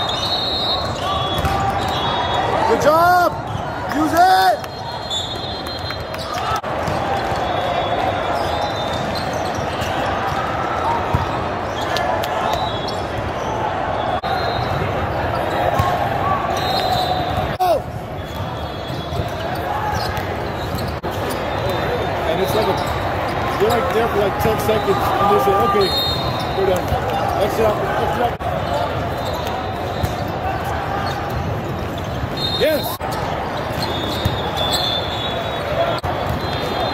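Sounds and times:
hubbub of players and spectators: 0:00.0 - 0:36.9
volleyball hits: 0:00.8 - 0:02.1, 0:06.2 - 0:07.5, 0:14.6 - 0:17.6
sneaker squeaks on court: 0:08.3 - 0:10.1, 0:18.2 - 0:24.0, 0:28.8 - 0:36.9.

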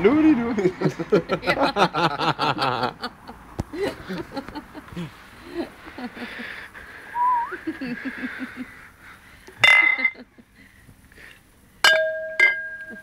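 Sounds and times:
glass beer mugs clinking: 0:09.6 - 0:10.2, 0:11.8 - 0:13.0.

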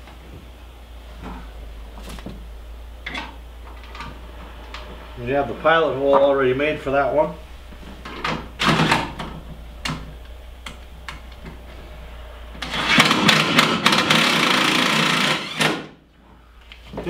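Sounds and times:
cordless drill driving screw: 0:12.6 - 0:15.9.

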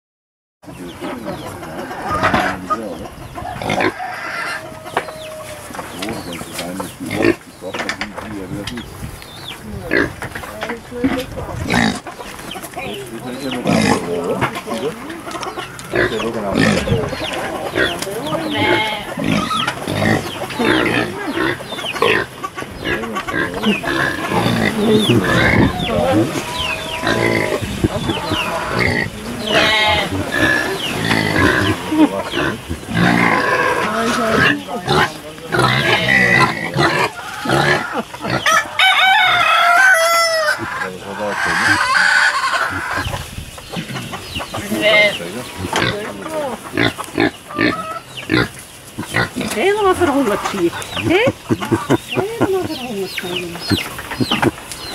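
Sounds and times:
chickens clucking: 0:00.6 - 0:54.9
pigs grunting: 0:00.8 - 0:08.7, 0:09.7 - 0:10.4, 0:11.0 - 0:12.2, 0:12.8 - 0:54.9.

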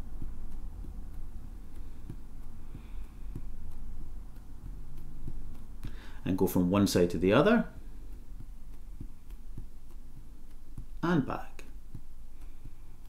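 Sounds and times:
fingertips tapping on tabletop: 0:00.0 - 0:13.0
low room hum: 0:00.0 - 0:13.0.

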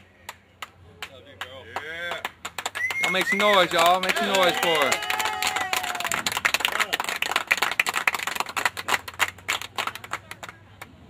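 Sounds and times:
crowd clapping: 0:00.0 - 0:10.9
drawn-out voice cheer: 0:02.8 - 0:06.3.

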